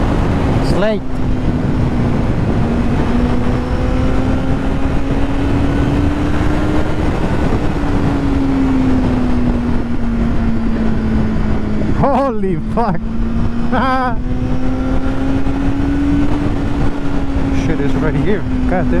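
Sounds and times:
motorcycle engine cruising: 0:00.0 - 0:19.0
wind rush on microphone: 0:00.0 - 0:19.0.

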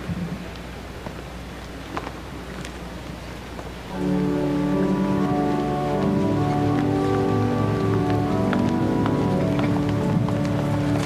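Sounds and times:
church organ chords: 0:03.9 - 0:11.0.

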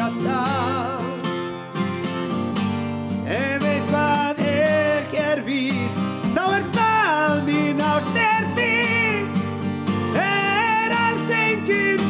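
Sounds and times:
man singing slow melody: 0:00.0 - 0:01.5, 0:03.2 - 0:12.0
strummed acoustic guitar: 0:00.0 - 0:12.0.

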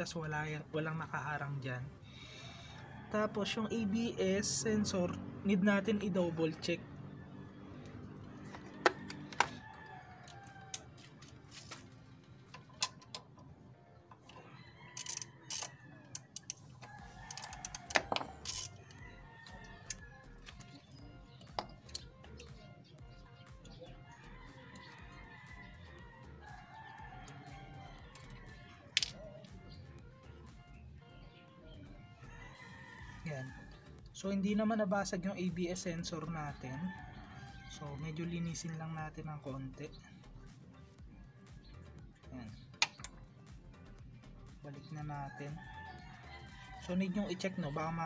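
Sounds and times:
metal and plastic clicks and taps: 0:42.8 - 0:43.2.

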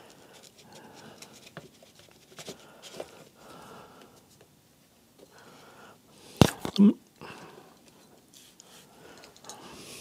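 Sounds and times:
soft breathing: 0:00.0 - 0:04.4, 0:05.2 - 0:06.5, 0:07.2 - 0:10.0.

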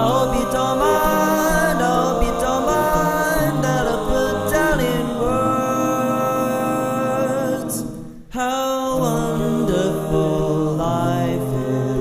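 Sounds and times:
man singing a cappella chords: 0:00.0 - 0:12.0.

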